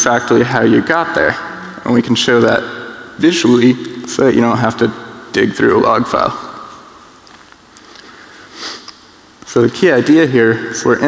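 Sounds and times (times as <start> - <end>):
man sniffing: 8.0 - 8.9.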